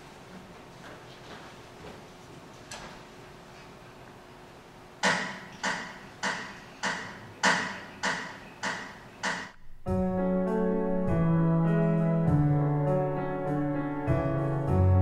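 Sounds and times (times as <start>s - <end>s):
slow grand piano piece: 9.6s - 15.0s.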